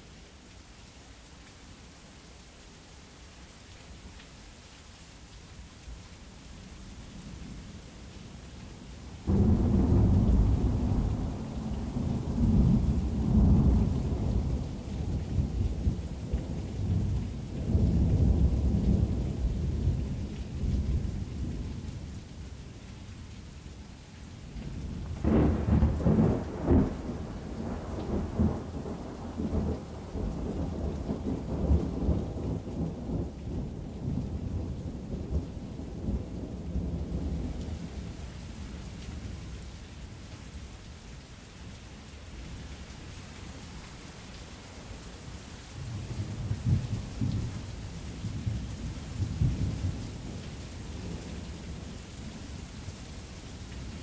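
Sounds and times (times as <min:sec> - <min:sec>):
steady rain: 0:00.0 - 0:54.0
crackling thunderclap: 0:09.2 - 0:21.8, 0:24.7 - 0:37.9, 0:45.8 - 0:52.0
deep rumbling thunder: 0:09.3 - 0:15.9, 0:25.0 - 0:35.4.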